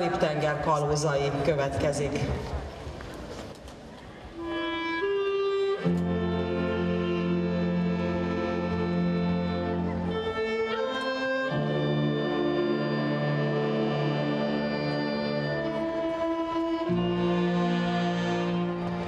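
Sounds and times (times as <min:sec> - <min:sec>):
wind band playing chords: 0:04.4 - 0:19.0.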